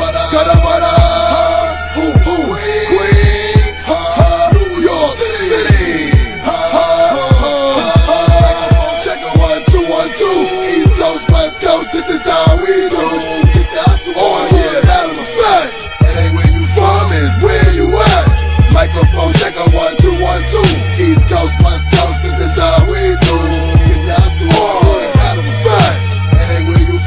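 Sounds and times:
hip hop drum beat: 0.0s - 1.4s, 2.0s - 27.0s
deep bass line: 0.0s - 10.0s, 12.4s - 27.0s.

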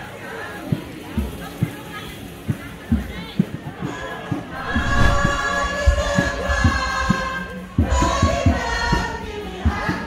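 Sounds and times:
faint crowd voices outdoors: 0.0s - 10.0s
low drum beats: 4.4s - 8.6s.

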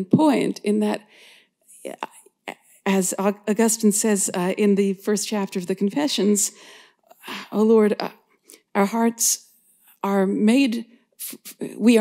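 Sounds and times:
woman speaking: 0.0s - 1.1s, 1.8s - 6.6s, 7.2s - 12.0s.

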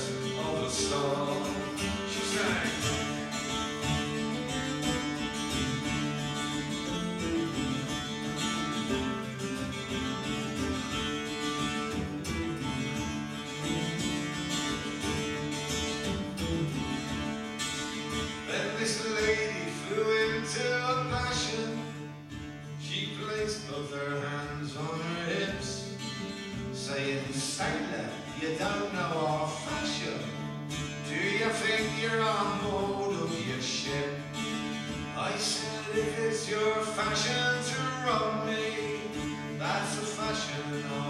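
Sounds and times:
plucked string instrument: 0.0s - 41.0s.

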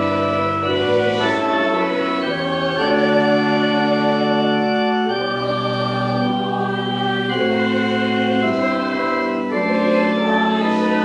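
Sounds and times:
choir singing: 0.0s - 11.0s
church organ playing hymn: 0.0s - 11.0s.

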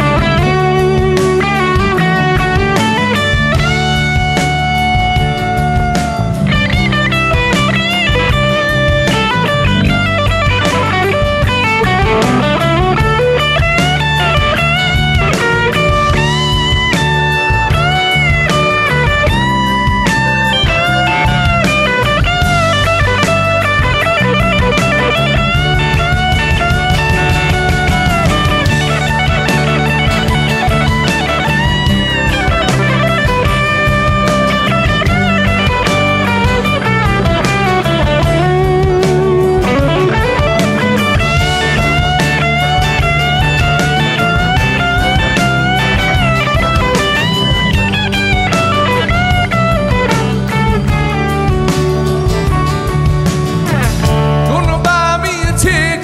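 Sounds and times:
bass guitar: 0.0s - 56.0s
drums: 0.0s - 56.0s
electric guitar lead line: 0.0s - 56.0s
strummed acoustic guitar: 0.0s - 56.0s.

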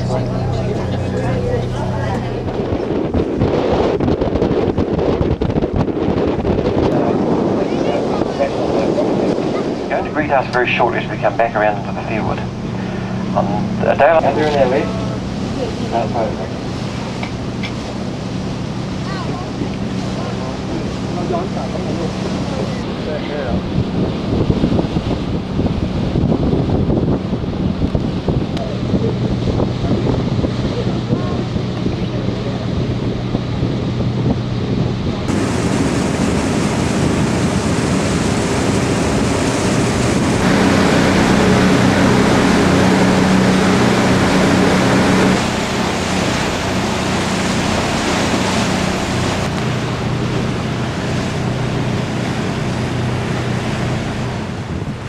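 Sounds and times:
boat engine droning: 0.0s - 55.0s
water rushing past hull: 0.0s - 55.0s
wind buffeting microphone: 0.0s - 55.0s.

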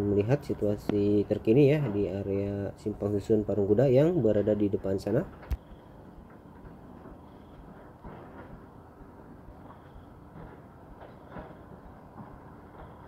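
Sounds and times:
distant road traffic rumble: 0.0s - 13.0s.

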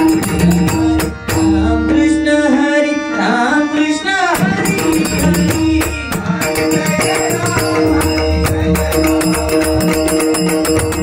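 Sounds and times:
hand drums playing: 0.0s - 2.6s, 4.3s - 11.0s
harmonium: 0.0s - 11.0s
man singing: 0.0s - 11.0s.

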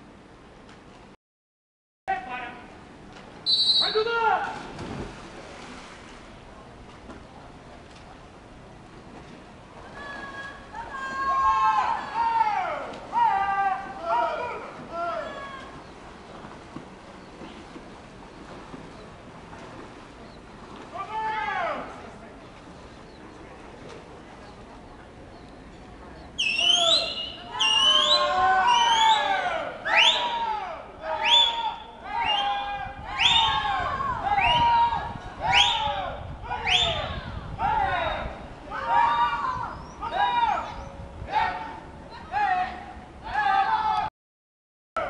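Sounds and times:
water splashing: 4.4s - 24.8s
people shouting encouragement: 9.9s - 15.8s, 26.6s - 44.1s
spectator shouting: 10.8s - 15.7s.

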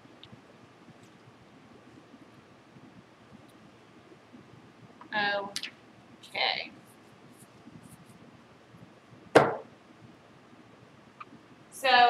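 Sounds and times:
sharp knock on tabletop: 9.4s - 9.7s.

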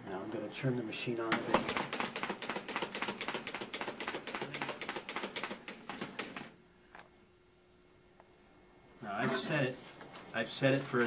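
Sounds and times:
paper-folding machine clattering: 1.3s - 6.5s.

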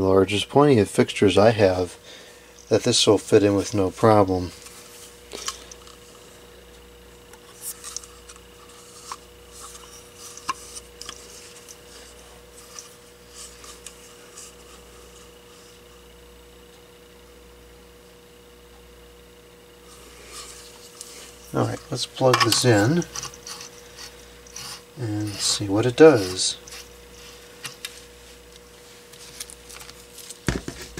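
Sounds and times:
faint steady hum: 0.0s - 30.9s
hands rubbing plastic: 19.9s - 30.9s.

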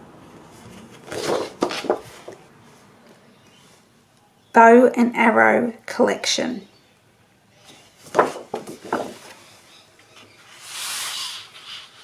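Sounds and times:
paper sliding against paper: 10.4s - 12.0s.

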